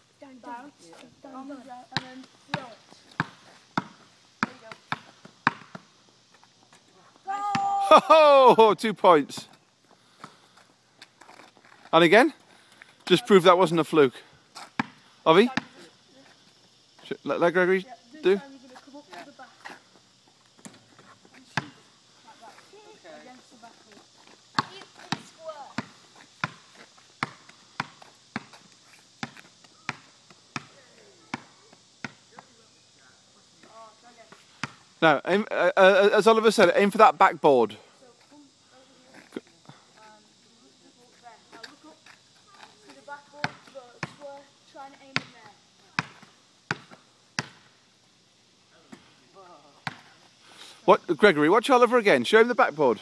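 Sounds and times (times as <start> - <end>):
basketball bouncing on asphalt: 1.8 - 6.7, 7.5 - 7.7, 14.5 - 15.9, 20.6 - 21.8, 24.5 - 32.6, 34.3 - 34.9, 42.6 - 44.4, 45.1 - 47.7, 49.8 - 50.2.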